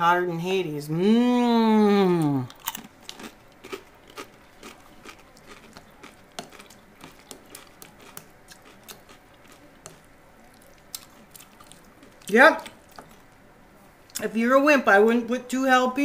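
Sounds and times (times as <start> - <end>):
chip being chewed: 2.2 - 13.3.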